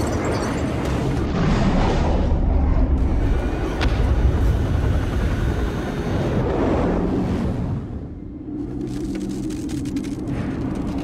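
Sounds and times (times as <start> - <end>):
deep continuous rumble: 0.0 - 11.0.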